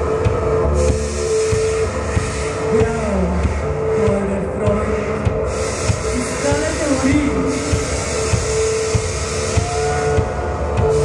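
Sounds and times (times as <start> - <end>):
drum kit beating: 0.0 - 11.0
live band playing loudly: 0.0 - 11.0.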